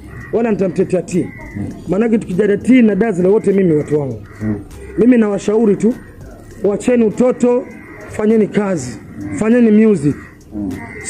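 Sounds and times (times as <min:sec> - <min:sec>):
man speaking: 0:00.3 - 0:11.0.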